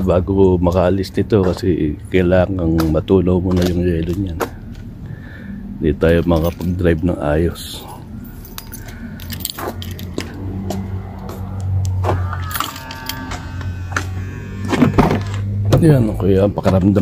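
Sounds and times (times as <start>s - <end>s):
steady low hum: 0.0s - 17.0s
car keys jangling: 6.1s - 14.0s
short ringing tone: 12.2s - 14.9s.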